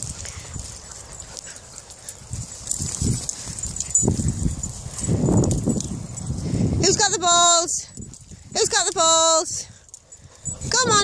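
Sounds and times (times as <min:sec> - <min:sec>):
dogs making low noisy sounds: 0:00.0 - 0:06.7, 0:09.8 - 0:11.0.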